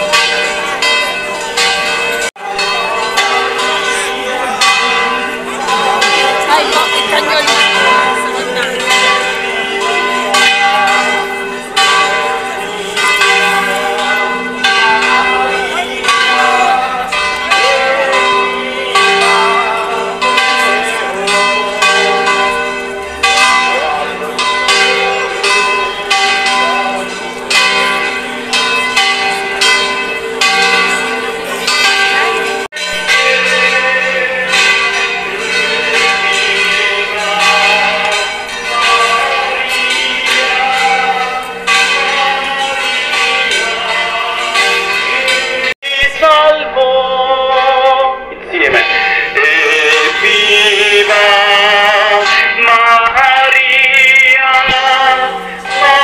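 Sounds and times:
church bells pealing: 0.0s - 56.0s.

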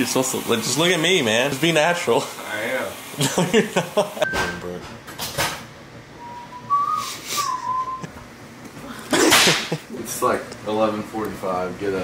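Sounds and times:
person whistling softly: 6.2s - 8.1s.

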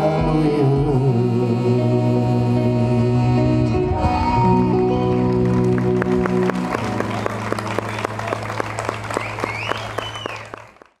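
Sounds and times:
audience clapping: 5.0s - 11.0s.

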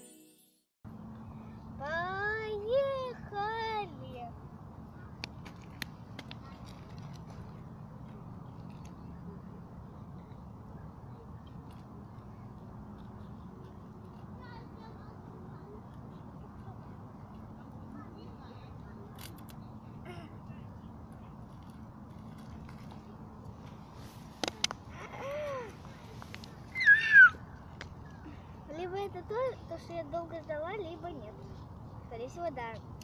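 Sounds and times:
low outdoor rumble: 0.9s - 33.0s.

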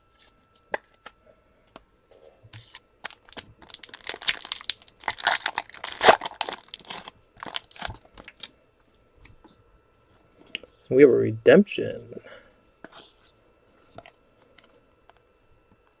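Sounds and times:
cards rustling: 2.6s - 8.5s
foil wrapper crinkling and tearing: 3.0s - 8.5s.

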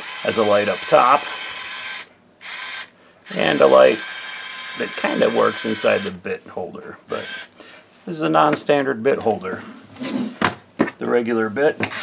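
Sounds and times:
electric screwdriver motor whirring: 0.0s - 6.1s, 7.1s - 7.5s.

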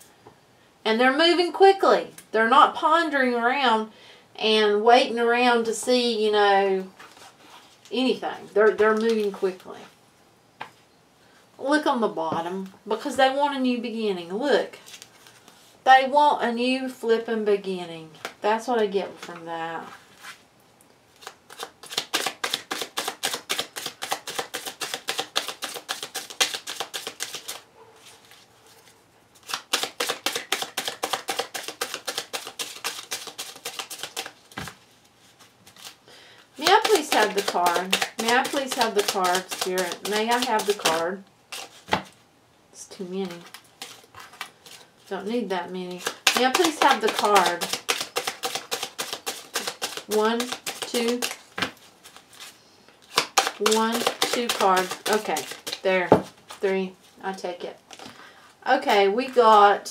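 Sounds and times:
person speaking: 7.9s - 10.0s, 15.8s - 20.0s, 36.6s - 41.2s, 42.8s - 43.5s, 45.0s - 48.0s, 49.5s - 51.4s, 53.4s - 57.9s, 58.6s - 59.9s
cards being shuffled: 8.6s - 9.7s, 21.2s - 27.6s, 28.2s - 36.0s, 36.6s - 42.2s, 43.2s - 44.9s, 45.9s - 56.7s
faint card handling: 43.2s - 44.9s, 45.9s - 56.7s.

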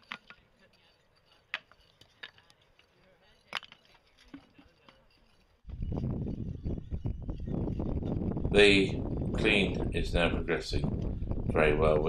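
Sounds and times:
stone slabs clinking: 0.0s - 5.6s.

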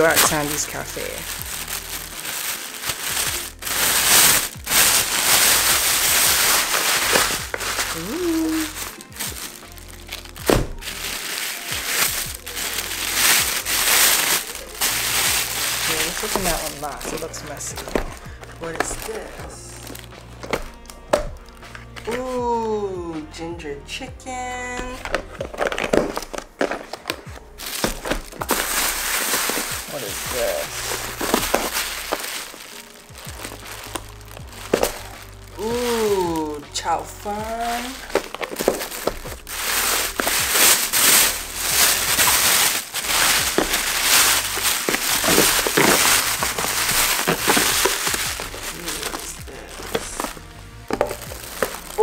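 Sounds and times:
plastic bag crinkling: 0.0s - 22.4s, 25.0s - 52.0s
background music: 0.0s - 52.0s
plastic containers clicking: 24.8s - 32.6s, 38.0s - 52.0s.

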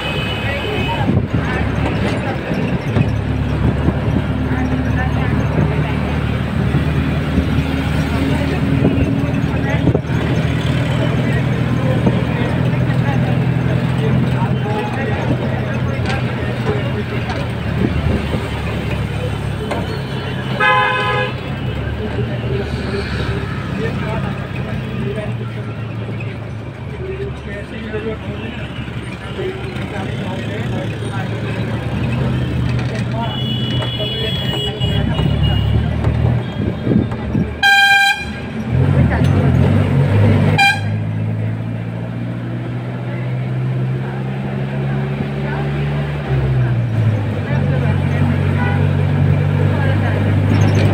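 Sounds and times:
road and engine noise: 0.0s - 50.9s
vehicle horn toot: 19.8s - 21.4s, 33.3s - 35.8s, 37.6s - 38.6s, 40.6s - 41.0s.

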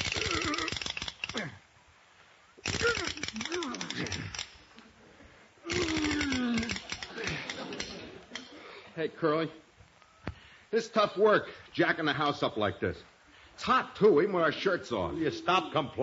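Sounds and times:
rasping ratcheting creaks: 0.0s - 1.6s, 2.6s - 4.7s, 5.7s - 8.5s.

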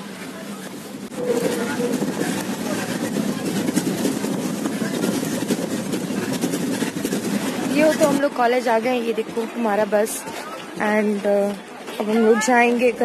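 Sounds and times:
bus engine and road noise: 0.0s - 13.0s.

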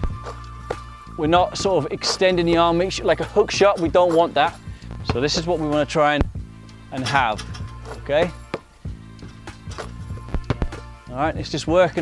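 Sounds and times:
background music: 0.0s - 12.0s
basketball bouncing on paving: 8.5s - 8.7s, 9.7s - 10.8s
basketball hitting backboard and rim: 9.4s - 10.8s.

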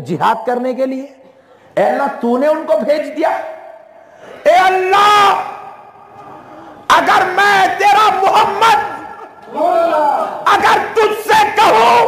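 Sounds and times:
man shouting: 4.4s - 6.0s, 6.8s - 12.0s.

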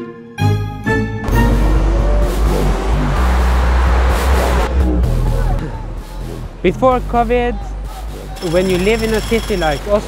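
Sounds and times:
city transport noise: 1.3s - 5.1s, 8.2s - 10.0s.

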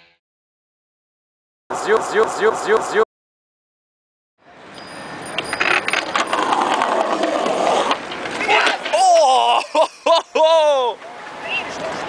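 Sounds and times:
skateboard wheels rolling on stone: 5.4s - 9.3s.

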